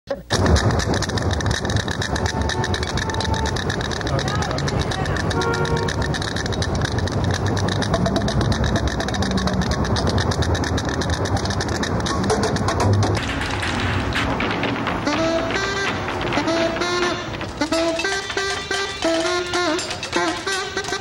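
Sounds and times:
pitched notes: 1.7s - 13.2s, 14.4s - 21.0s.

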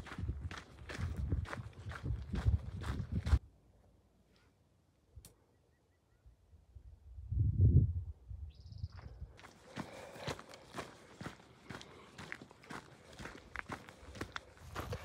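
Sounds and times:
footsteps crunching on gravel: 0.0s - 3.4s, 9.4s - 15.0s.

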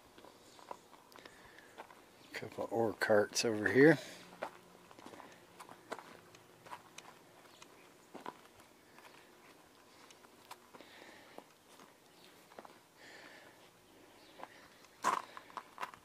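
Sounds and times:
footsteps on gravel: 0.1s - 2.6s, 3.5s - 16.0s.

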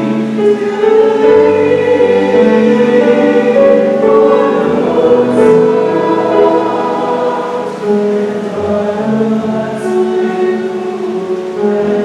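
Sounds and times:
choir singing sustained chords: 0.0s - 12.0s.

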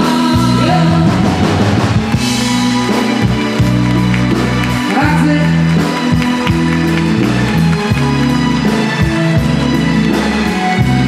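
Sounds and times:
woman singing: 0.0s - 1.6s
bass: 0.0s - 11.0s
dance band music: 0.0s - 11.0s
drums: 0.0s - 11.0s.

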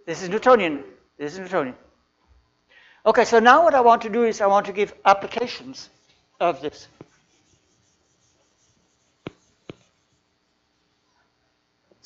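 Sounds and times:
chalk tapping on blackboard: 6.8s - 10.3s.

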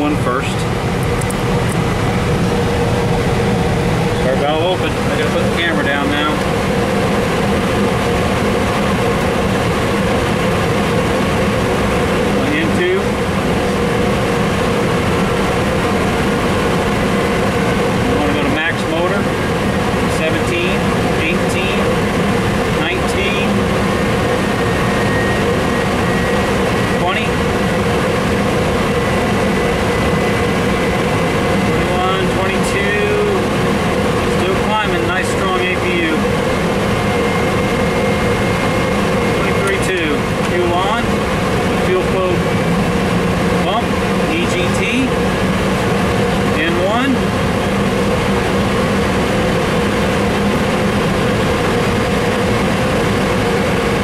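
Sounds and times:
cockpit drone: 0.0s - 54.0s
turbofan engine whine spooling up: 0.0s - 54.0s.

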